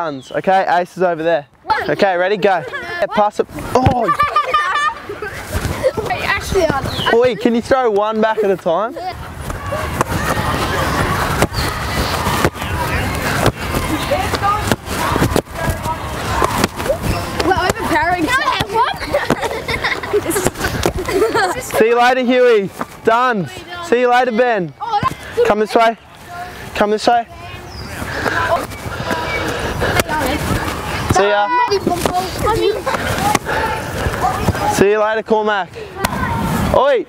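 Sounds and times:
outdoor background noise: 0:00.0 - 0:37.0
young children chattering: 0:01.6 - 0:34.9, 0:35.6 - 0:36.7
steady rushing noise: 0:26.2 - 0:37.0.

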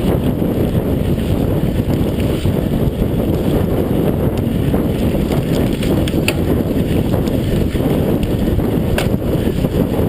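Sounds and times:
bike rumbling and rattling: 0:00.0 - 0:10.0
wind buffeting microphone: 0:00.0 - 0:10.0.

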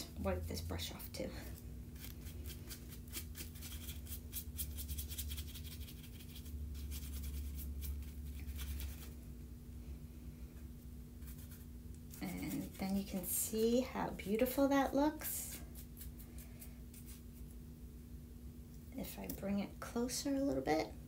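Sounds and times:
low steady hum: 0:00.0 - 0:21.0
brush bristles stroking cardstock: 0:02.0 - 0:09.2, 0:11.2 - 0:13.8, 0:15.4 - 0:17.5.

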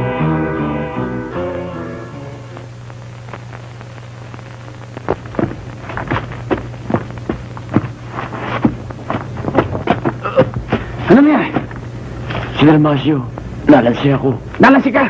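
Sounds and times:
low soundtrack hum: 0:00.0 - 0:14.6
short grunts: 0:10.2 - 0:10.6.

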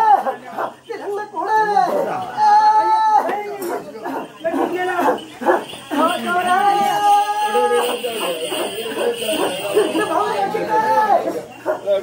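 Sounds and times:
excited voices calling out: 0:00.0 - 0:12.0
long high wavering call: 0:06.0 - 0:10.4.

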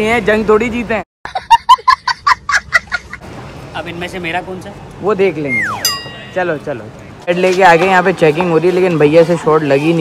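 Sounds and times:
boy laughing: 0:01.3 - 0:03.2.

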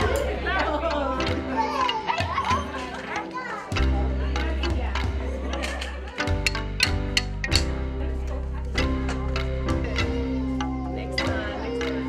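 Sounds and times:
music with steady bass line: 0:00.0 - 0:03.0, 0:03.8 - 0:12.0
children's voices and chatter: 0:00.0 - 0:12.0.

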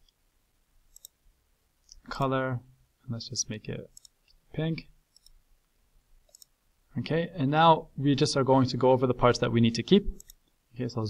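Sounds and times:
faint computer mouse clicks: 0:00.9 - 0:01.2, 0:04.0 - 0:04.4, 0:05.1 - 0:05.4, 0:06.3 - 0:06.6, 0:10.2 - 0:10.5.

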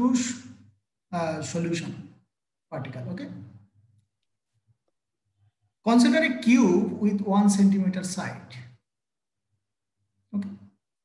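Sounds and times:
man speaking: 0:00.0 - 0:03.6.

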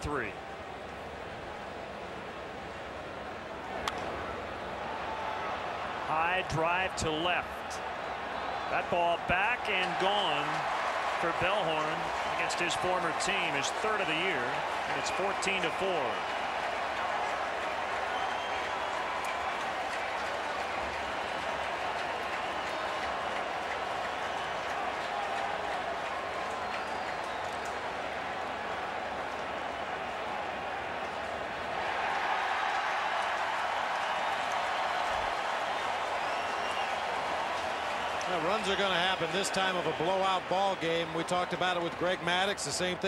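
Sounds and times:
scattered applause: 0:04.7 - 0:43.0
crowd voices: 0:06.1 - 0:16.2.

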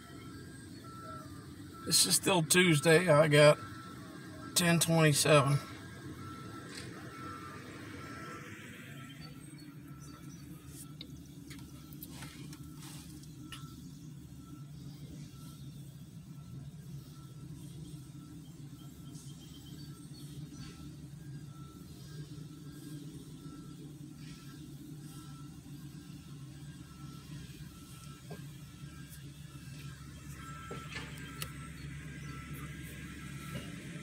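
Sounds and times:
faint high beep: 0:00.0 - 0:15.7, 0:16.4 - 0:34.0.

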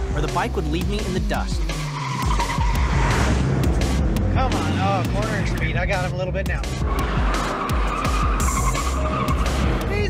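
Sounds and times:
car tyres squealing: 0:01.5 - 0:03.8, 0:06.6 - 0:10.0
loud car engine: 0:01.6 - 0:10.0.

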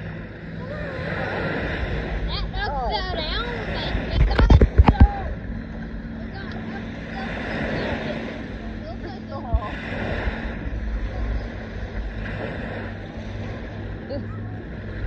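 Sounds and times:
distant voices: 0:00.0 - 0:15.0
low steady hum: 0:00.0 - 0:15.0
waves washing in: 0:00.0 - 0:15.0
wind on microphone: 0:00.0 - 0:15.0.

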